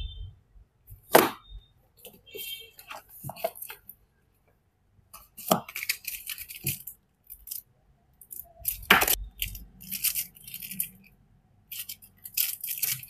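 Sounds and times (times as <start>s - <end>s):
plastic wrapping crinkling: 5.2s - 13.0s.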